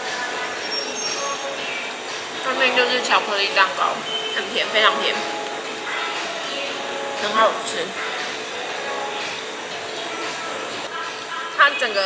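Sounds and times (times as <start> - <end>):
cafe room noise hum: 0.0 - 12.0.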